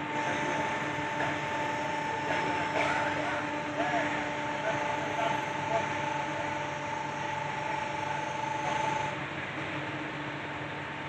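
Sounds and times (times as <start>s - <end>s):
high motor whine: 0.0s - 9.3s
hydraulic pump hum: 0.0s - 11.0s.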